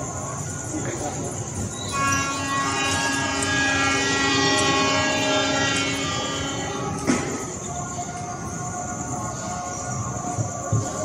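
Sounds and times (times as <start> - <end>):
train horn blast: 1.9 - 7.7.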